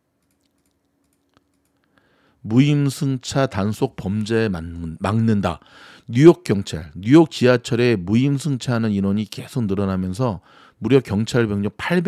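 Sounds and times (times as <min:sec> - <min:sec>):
faint computer keyboard clicks: 0:00.2 - 0:01.9.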